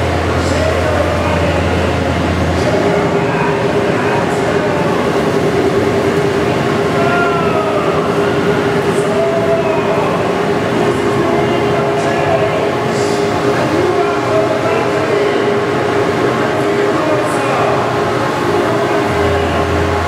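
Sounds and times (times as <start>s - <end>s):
fan motor hum: 0.0s - 20.0s
fans blowing air: 0.0s - 20.0s.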